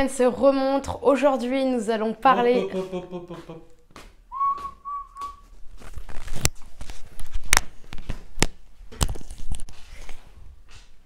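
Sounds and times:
person whistling a note: 0:04.3 - 0:05.5.

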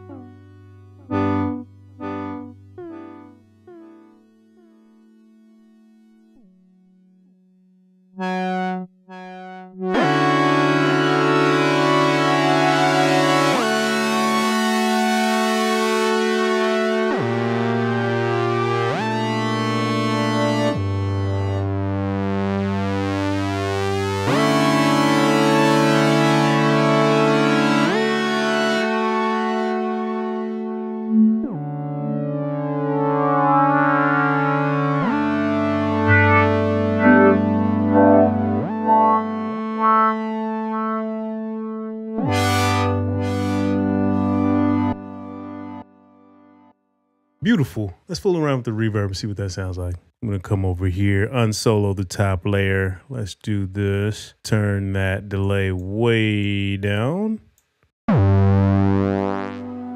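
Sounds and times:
synthesizer chords with delay: 0:00.0 - 0:06.5, 0:08.2 - 0:46.6, 0:58.1 - 0:59.9.

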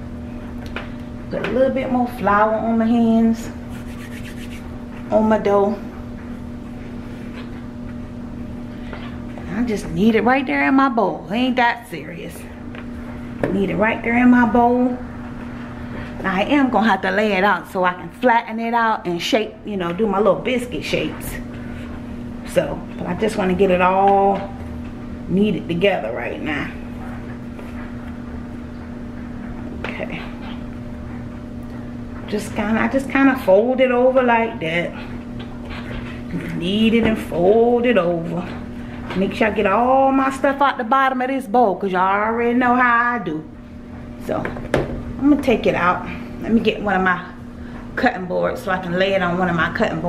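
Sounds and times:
low hum and rumble: 0:00.0 - 0:50.0
hands kneading dough: 0:00.4 - 0:10.0.

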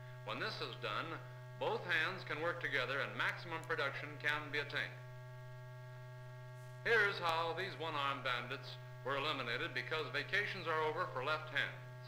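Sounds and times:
steady electrical hum: 0:00.0 - 0:12.0
man narrating: 0:00.3 - 0:05.0, 0:06.8 - 0:11.8.

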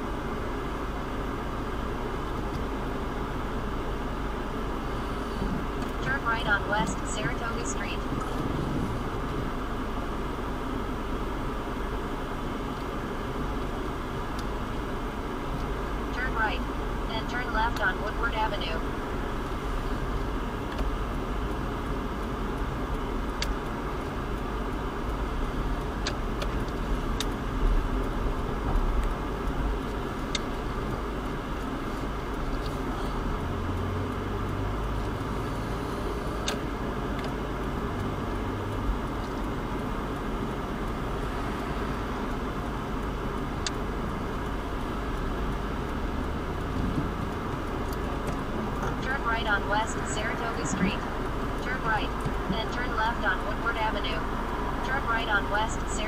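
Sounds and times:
car engine and tyres rumbling: 0:00.0 - 0:56.0.

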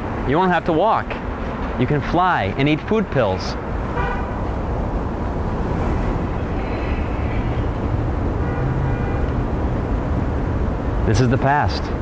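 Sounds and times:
low rumble of vehicles: 0:00.0 - 0:12.0.

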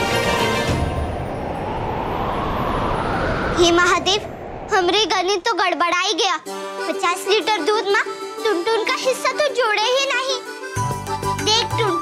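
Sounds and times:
rising whoosh: 0:00.2 - 0:05.6.

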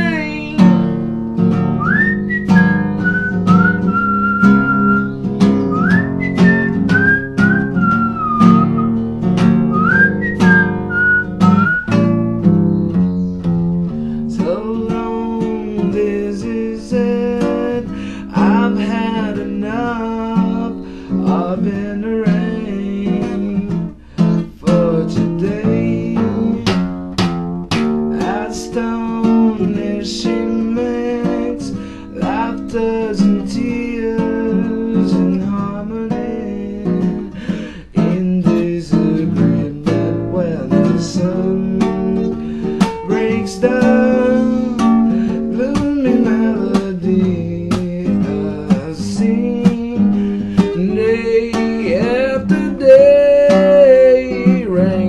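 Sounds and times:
acoustic guitar strummed: 0:00.0 - 0:55.0
whistled melody: 0:01.5 - 0:16.3.

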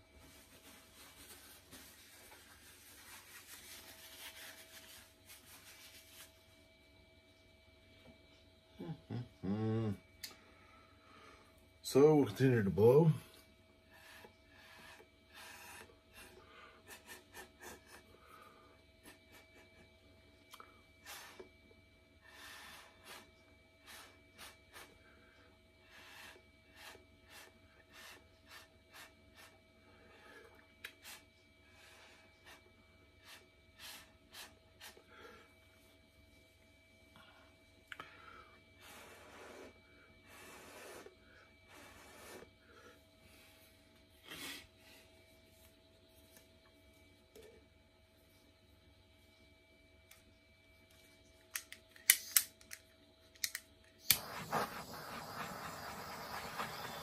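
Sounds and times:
breath blown through a straw: 0:54.2 - 0:57.0.

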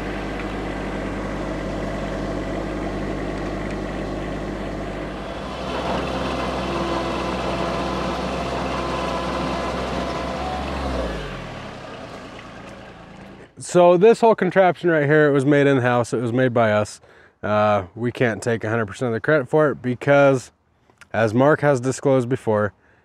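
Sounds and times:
diesel engine running: 0:00.0 - 0:13.6.

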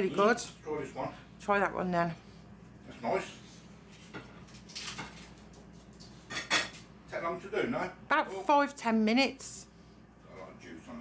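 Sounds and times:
cutlery clinking on plate: 0:06.3 - 0:06.8.

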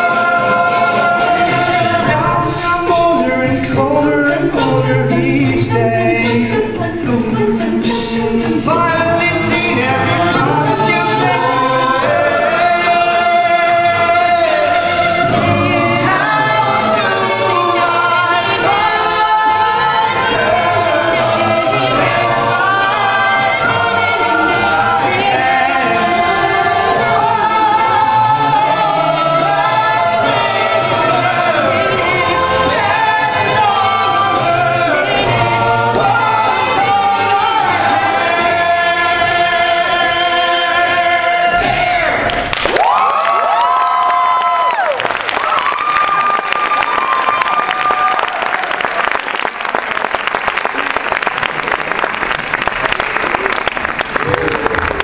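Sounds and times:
male soloist singing: 0:00.0 - 0:42.4
a cappella group singing: 0:00.0 - 0:42.5
vocal percussion beat: 0:01.0 - 0:43.8.

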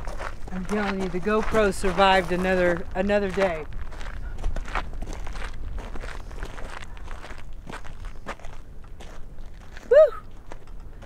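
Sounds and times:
footsteps crunching on gravel: 0:00.0 - 0:11.0
wind rumble on microphone: 0:00.0 - 0:11.0
person shouting woo: 0:09.9 - 0:10.2.

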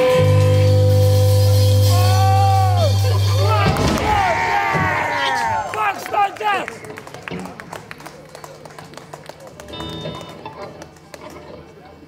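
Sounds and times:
scattered clapping: 0:05.6 - 0:11.8.

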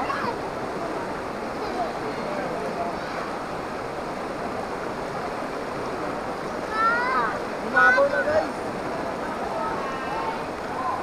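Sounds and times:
river water rushing over rocks: 0:00.0 - 0:11.0.

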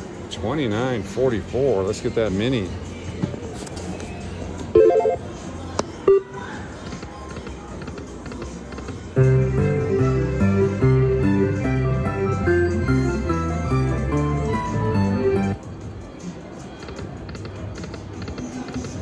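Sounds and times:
slot machine tune: 0:04.7 - 0:05.4, 0:06.0 - 0:06.3, 0:11.4 - 0:15.6.

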